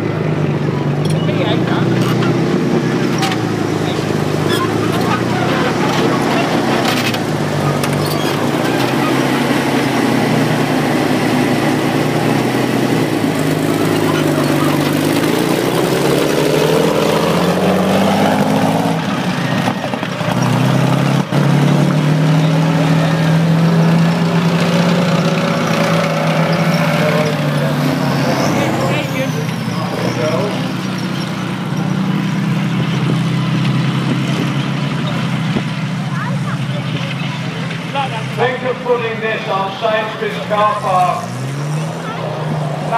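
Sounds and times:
vehicle engines driving past: 0.0s - 42.9s.

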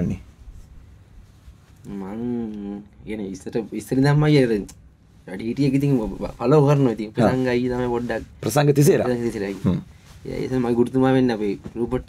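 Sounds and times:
man's voice: 5.4s - 12.0s.

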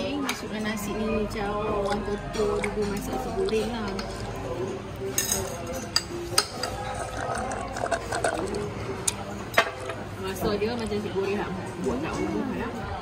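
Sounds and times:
murmur of voices: 0.0s - 13.0s
cutlery clinking against a plate: 1.8s - 4.4s, 5.0s - 10.1s.

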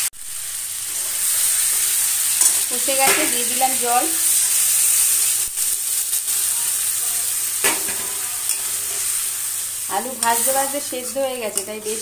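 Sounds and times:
curry sizzling in a metal pan: 0.0s - 12.0s
metal spatula stirring: 2.3s - 3.4s, 7.6s - 12.0s.

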